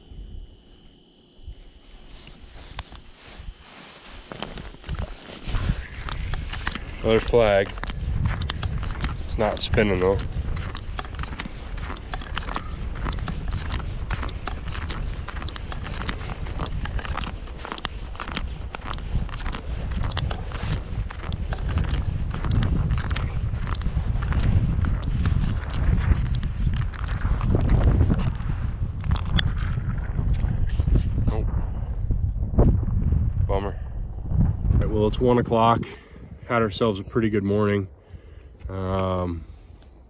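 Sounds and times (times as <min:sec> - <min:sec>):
wind rumbling on microphone: 0:00.0 - 0:40.0
footsteps on ice: 0:01.9 - 0:28.6.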